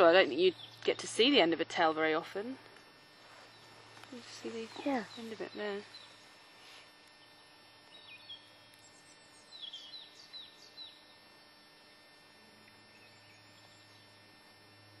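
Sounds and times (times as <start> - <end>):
low steady hum: 0.0 - 15.0
bird chirps: 7.2 - 11.1.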